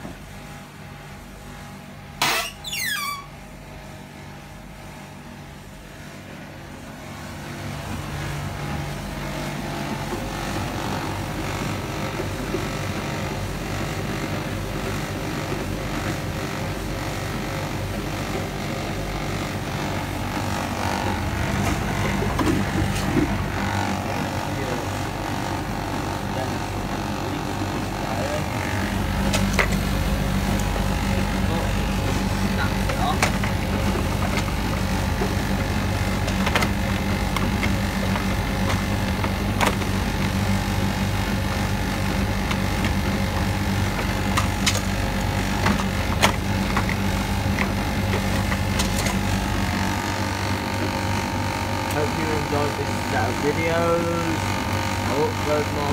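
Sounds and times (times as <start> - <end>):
tumble dryer humming: 3.4 - 55.9.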